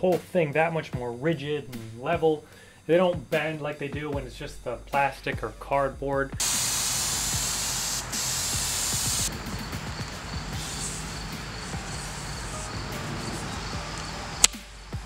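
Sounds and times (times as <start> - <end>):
aerosol spray hissing: 6.4 - 14.2
sharp click: 14.4 - 14.6.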